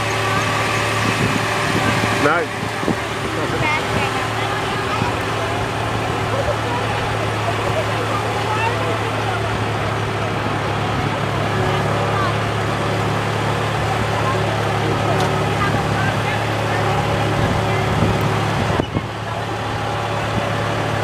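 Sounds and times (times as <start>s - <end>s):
tractor engine running: 0.0s - 21.0s.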